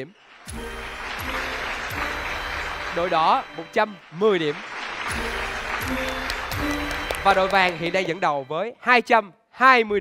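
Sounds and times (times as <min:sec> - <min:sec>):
applause: 0:00.0 - 0:08.2
background music: 0:00.4 - 0:10.0.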